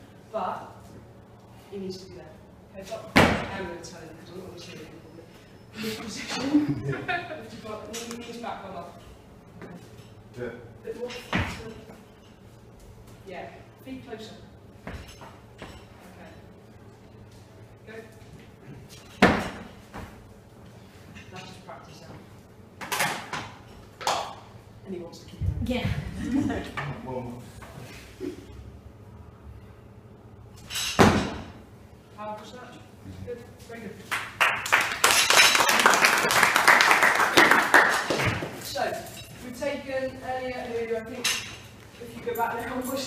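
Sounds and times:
feet slamming on gym floor: 19.2s - 20.2s
small group clapping: 34.0s - 38.6s.

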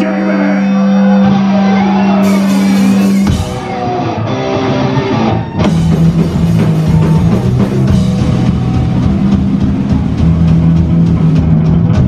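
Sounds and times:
bass guitar: 0.0s - 12.0s
electric guitar: 0.8s - 12.0s
pounding drum kit: 2.2s - 4.2s, 5.4s - 12.0s.

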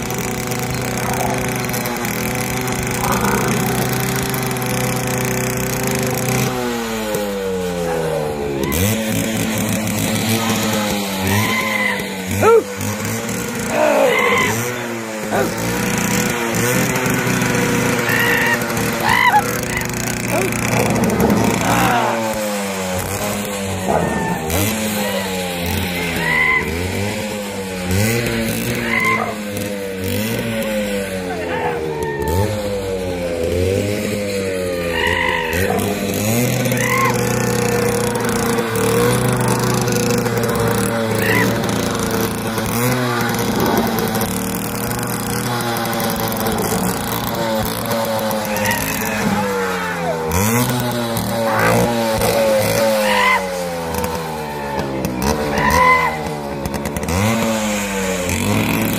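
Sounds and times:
motorcycle engine revving: 0.0s - 58.9s.

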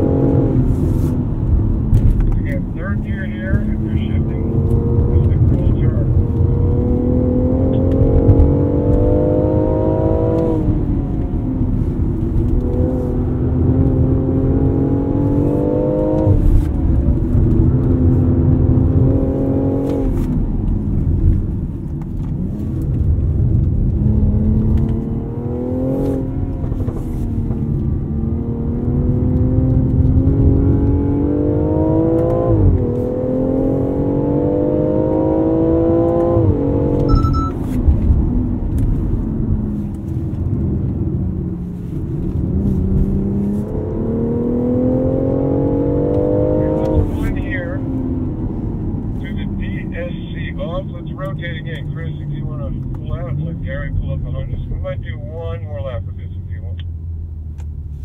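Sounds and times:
car engine revving: 0.0s - 58.0s
tyre and road noise: 0.0s - 58.0s.

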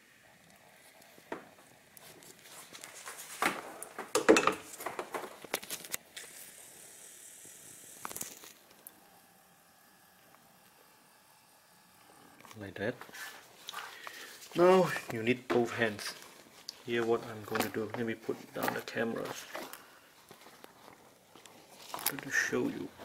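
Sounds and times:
paper filter rustling and scraping: 2.0s - 4.1s, 12.6s - 23.0s.

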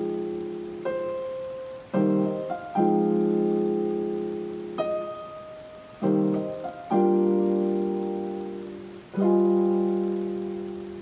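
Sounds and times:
digital piano chords: 0.0s - 11.0s.

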